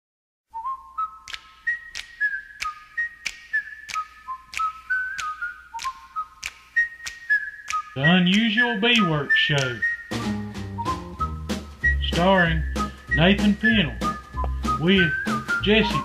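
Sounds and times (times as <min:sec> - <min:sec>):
whistled melody: 0:00.5 - 0:16.0
steady click beat: 0:01.3 - 0:16.0.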